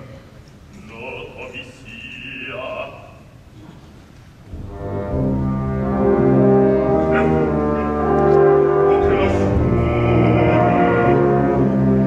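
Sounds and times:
brass: 0:04.5 - 0:12.0
orchestra playing low chords: 0:04.5 - 0:12.0
strings: 0:04.5 - 0:12.0.

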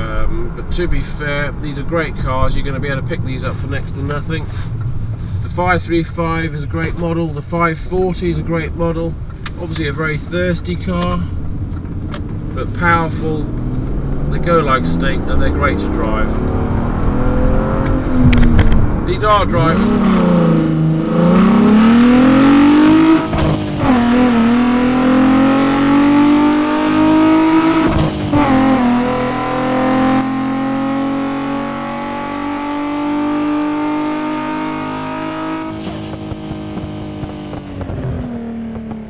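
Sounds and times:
car engine accelerating: 0:09.2 - 0:39.0.

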